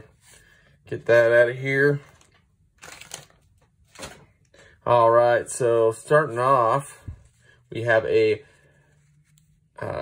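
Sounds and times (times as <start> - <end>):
cards rustling: 0.1 - 4.5.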